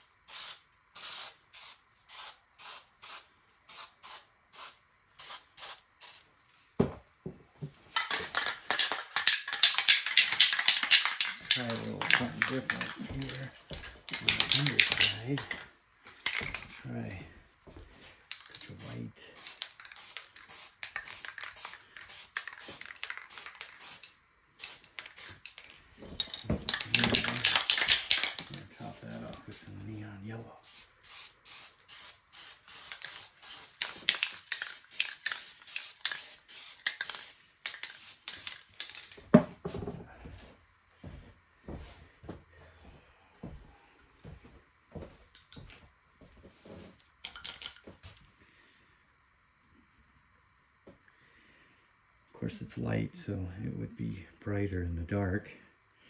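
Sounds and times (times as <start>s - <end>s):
spray paint can hissing: 0.0s - 6.3s, 8.0s - 13.0s, 18.3s - 25.7s, 26.7s - 28.8s, 30.6s - 39.1s.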